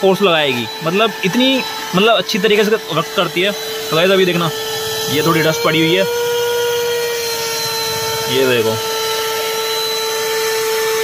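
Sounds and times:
car vacuum cleaner running: 0.0s - 11.0s.

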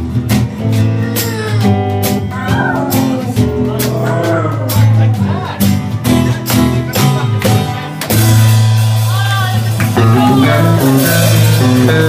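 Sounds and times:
bass notes: 0.0s - 12.0s
guitar: 0.0s - 12.0s
drum and cymbal hits: 8.0s - 12.0s.

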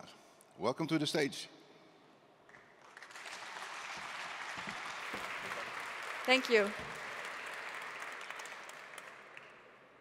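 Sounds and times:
audience applauding: 2.5s - 10.0s.

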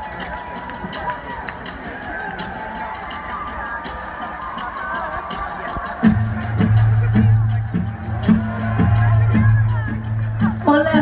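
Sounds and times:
arena crowd noise: 0.0s - 11.0s
crowd cheers and whistles: 0.0s - 11.0s.

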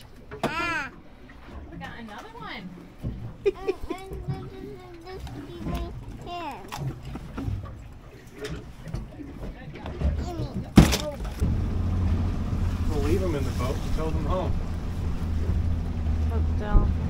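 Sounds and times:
boat engine rumble: 0.0s - 17.0s
wind and water noise: 0.0s - 17.0s
voices and laughter: 3.2s - 5.6s.

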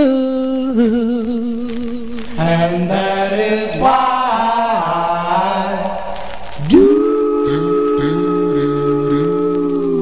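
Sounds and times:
doo-wop group singing in harmony: 2.4s - 10.0s.

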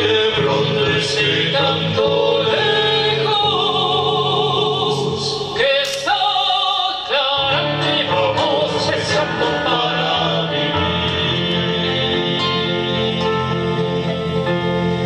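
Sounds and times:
men singing in harmony: 0.0s - 14.4s
keyboard: 0.0s - 15.0s.

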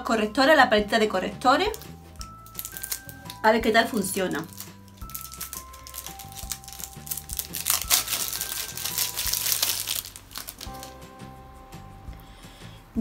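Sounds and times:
background music with held notes: 0.0s - 13.0s
packaging crinkling and rustling: 1.7s - 11.0s.

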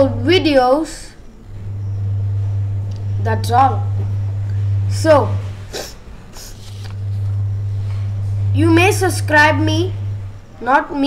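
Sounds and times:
steady low hum: 0.0s - 11.0s
paper rustling: 6.4s - 7.3s.

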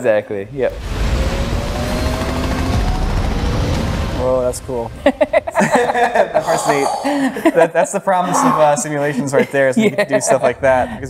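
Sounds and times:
heavy low rumble: 0.5s - 7.6s
helicopter rotor noise: 1.3s - 6.6s.

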